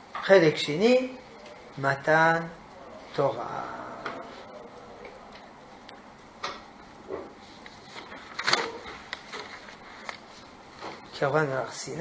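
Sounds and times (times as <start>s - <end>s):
paper rustling: 7.3s - 11.1s.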